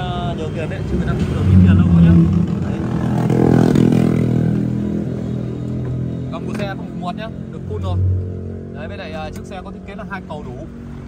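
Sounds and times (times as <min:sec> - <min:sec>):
vehicle engine passing: 0:00.0 - 0:11.0.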